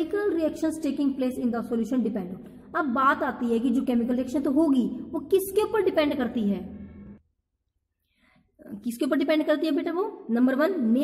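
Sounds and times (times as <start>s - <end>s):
woman speaking: 0.0s - 7.2s, 8.6s - 11.0s.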